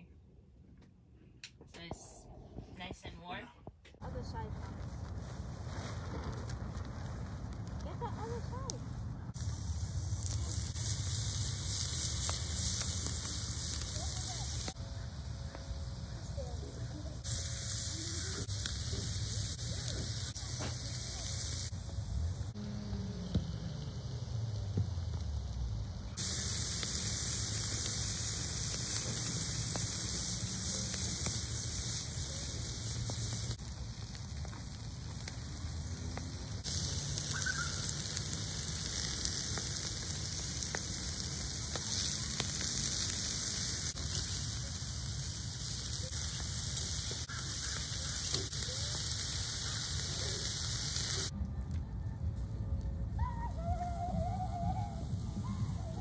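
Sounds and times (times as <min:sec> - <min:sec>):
low rumble: 0:01.8 - 0:13.5
chicken sizzling on grill: 0:05.2 - 0:51.4.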